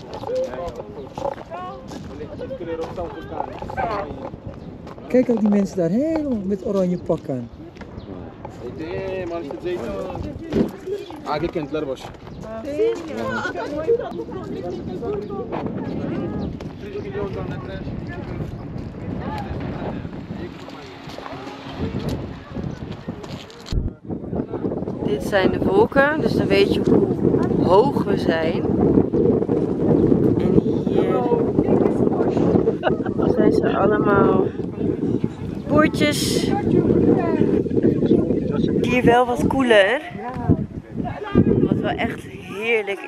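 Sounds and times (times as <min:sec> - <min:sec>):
voices of people nearby: 0:00.0 - 0:43.0
wind buffeting microphone: 0:00.0 - 0:43.0
people talking: 0:12.5 - 0:28.7, 0:30.4 - 0:43.0.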